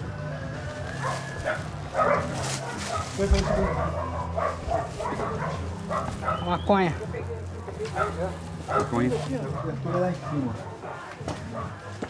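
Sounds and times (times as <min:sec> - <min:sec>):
dog barking: 0:01.0 - 0:12.0
men talking: 0:02.8 - 0:11.8.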